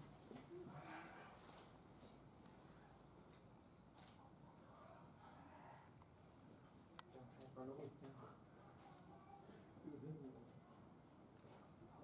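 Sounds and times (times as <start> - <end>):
faint distant voices talking: 4.0 - 12.0.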